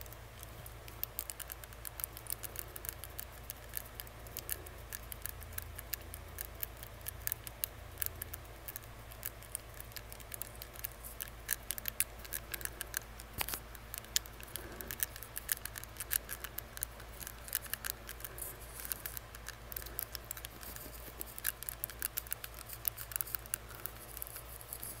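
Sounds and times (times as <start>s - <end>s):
tongue ring clicking against teeth: 1.0s - 20.5s.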